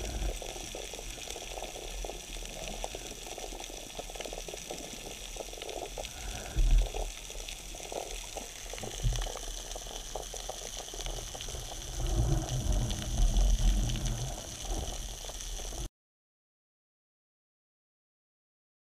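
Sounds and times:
underwater hiss with crackling: 0.0 - 15.9.

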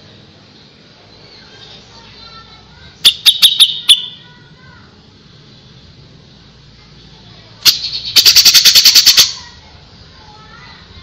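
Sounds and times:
bird singing harsh rattling notes: 3.0 - 4.2, 7.6 - 9.5.

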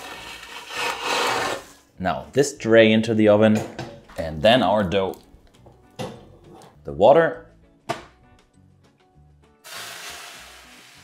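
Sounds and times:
paper scraping across wooden board: 0.0 - 1.8.

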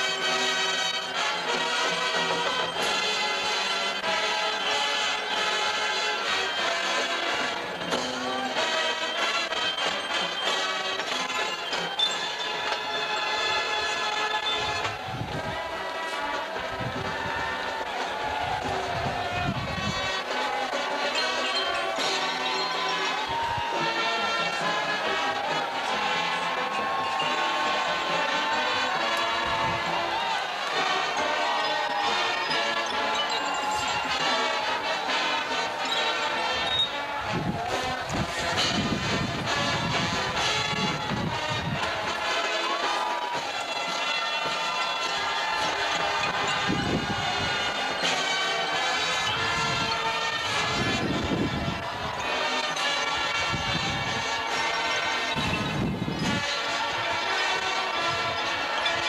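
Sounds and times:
brass chords: 0.0 - 59.0
drumline playing: 0.0 - 59.0
stadium crowd noise: 0.0 - 59.0.

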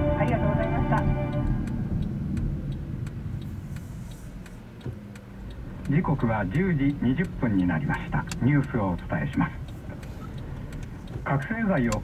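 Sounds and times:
engine and road rumble: 0.0 - 12.0
turn signal clicking: 0.0 - 12.0.

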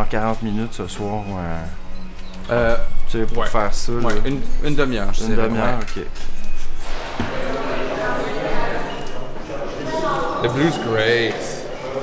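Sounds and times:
murmur of voices: 6.8 - 12.0.

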